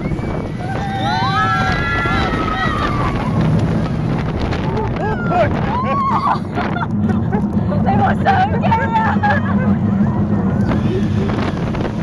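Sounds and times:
roller coaster cars rattling: 0.0 - 12.0
wind rushing on microphone: 0.0 - 12.0.

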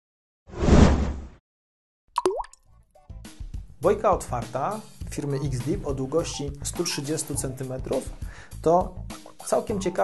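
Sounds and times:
soft background music: 3.0 - 10.0.

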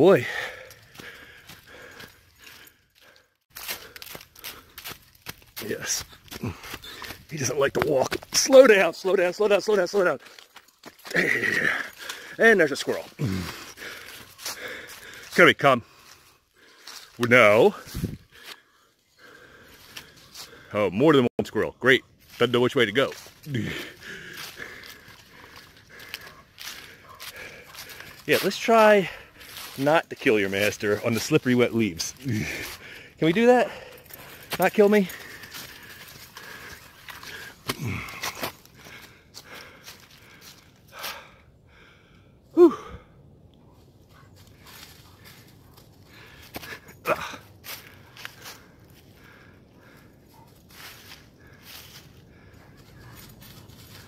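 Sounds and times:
footsteps crunching through dry leaves: 3.5 - 18.5, 22.2 - 40.8, 44.1 - 49.1, 49.8 - 54.0.

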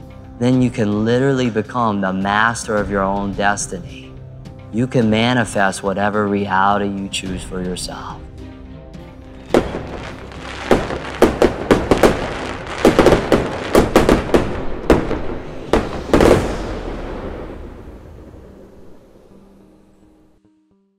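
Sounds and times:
fireworks bangs: 9.4 - 19.6
rumbling echo: 9.4 - 20.4.

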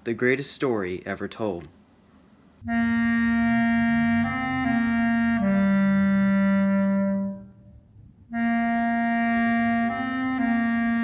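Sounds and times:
clarinet low note: 2.6 - 11.0.

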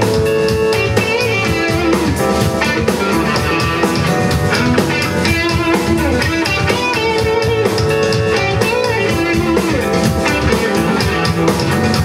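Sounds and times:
bass guitar: 0.0 - 12.0
drum kit beat: 0.0 - 12.0
electric guitar: 0.0 - 12.0
keyboard: 0.0 - 12.0.

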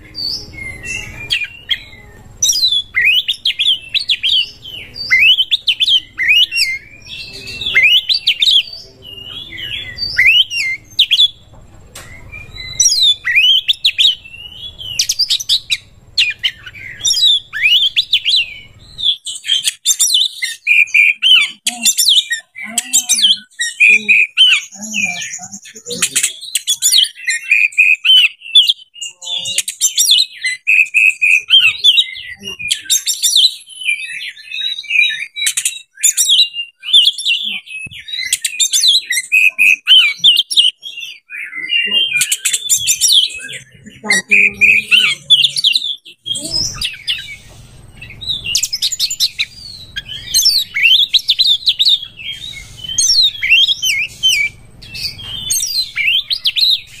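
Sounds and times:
magpie-robin singing: 0.0 - 57.0.

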